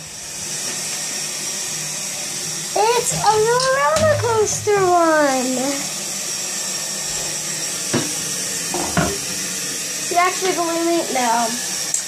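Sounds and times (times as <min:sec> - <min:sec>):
steady hiss: 0:02.7 - 0:12.0.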